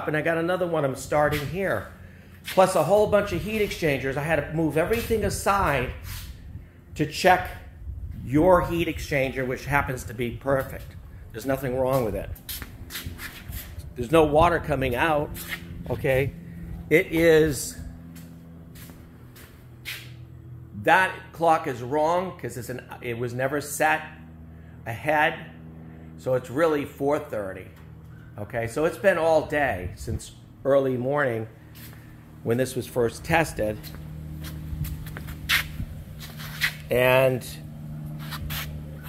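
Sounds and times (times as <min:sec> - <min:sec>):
low mechanical hum: 0:00.0 - 0:39.0.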